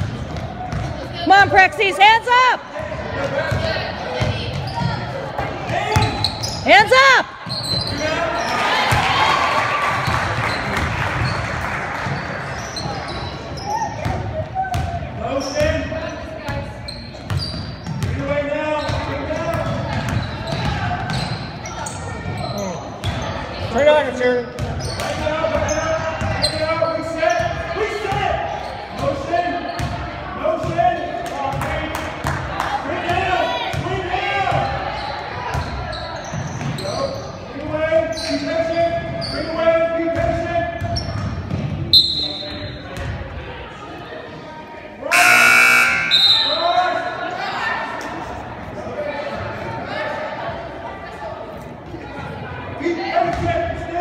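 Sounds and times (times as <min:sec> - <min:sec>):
voices calling out in gym: 0:00.0 - 0:54.0.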